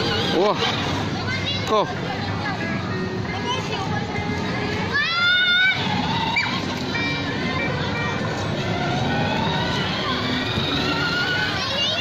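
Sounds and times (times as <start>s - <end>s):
toy car electric motor whining: 4.9s - 12.0s
plastic wheels rolling on pavement: 5.1s - 12.0s.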